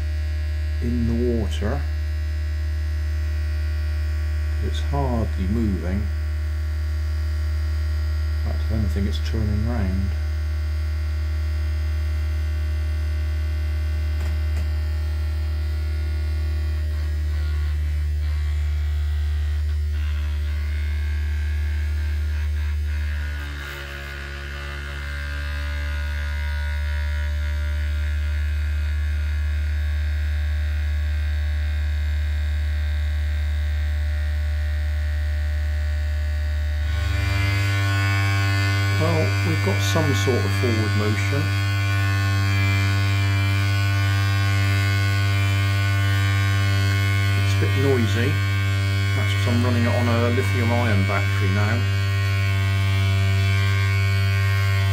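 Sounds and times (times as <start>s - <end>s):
small electric motor humming: 0.0s - 54.9s.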